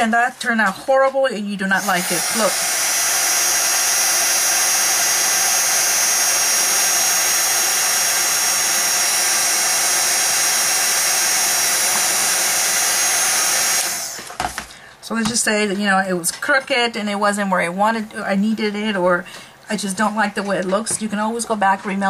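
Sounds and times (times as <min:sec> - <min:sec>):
heat tool blowing with motor whine: 0:01.6 - 0:14.6.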